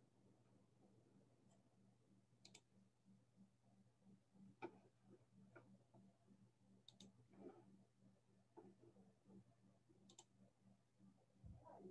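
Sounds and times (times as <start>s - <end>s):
faint clicks: 6.8s - 7.2s, 10.1s - 10.3s.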